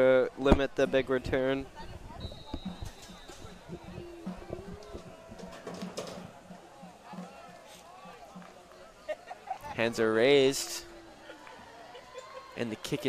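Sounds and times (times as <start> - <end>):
distant crowd chatter: 0.0 - 13.0
faint steady low beat: 1.7 - 8.8.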